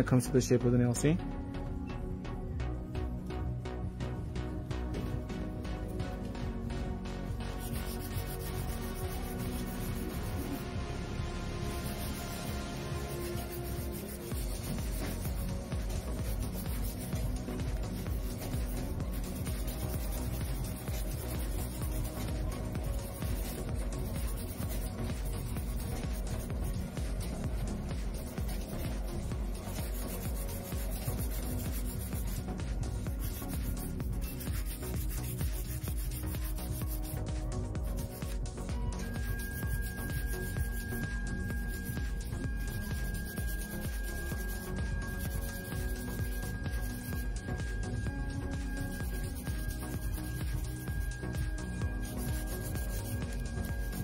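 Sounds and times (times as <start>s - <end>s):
background music: 0.0s - 54.0s
nail file rubbing on nail: 7.4s - 10.7s, 11.6s - 54.0s.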